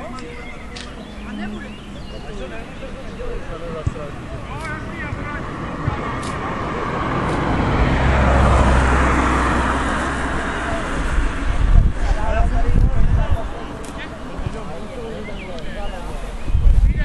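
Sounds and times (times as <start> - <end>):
road vehicle passing by: 0.0 - 16.5.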